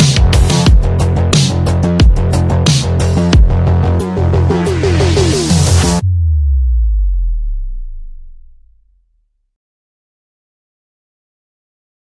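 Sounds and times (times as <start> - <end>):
low synth tone gliding down: 4.1 - 9.1.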